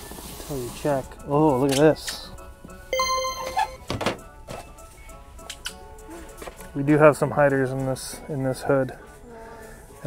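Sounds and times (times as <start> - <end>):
background music: 0.0 - 10.0
thunk of package on metal shelf: 3.9 - 4.2.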